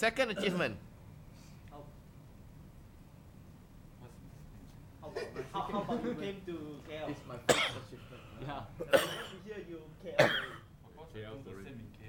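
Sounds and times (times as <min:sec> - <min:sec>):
man coughing: 0:07.4 - 0:08.0, 0:08.8 - 0:09.4, 0:10.2 - 0:10.7.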